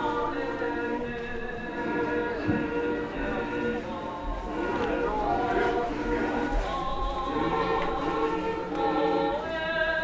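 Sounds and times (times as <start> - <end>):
group singing in harmony: 0.0 - 10.0.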